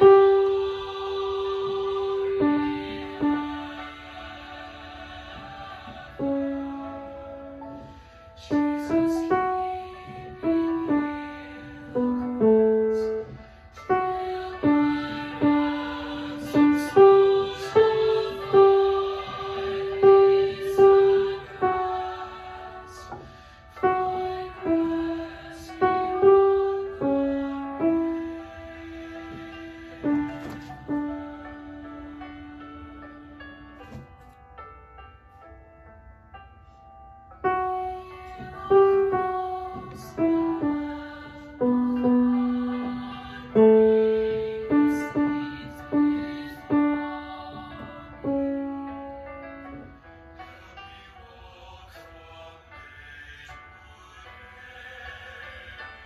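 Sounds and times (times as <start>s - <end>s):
slow piano melody: 0.0s - 56.0s.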